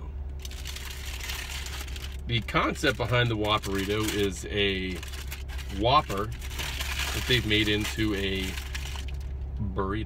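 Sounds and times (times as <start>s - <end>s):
steady low hum: 0.0s - 10.0s
paper wrapper rustling and crinkling: 0.4s - 9.3s.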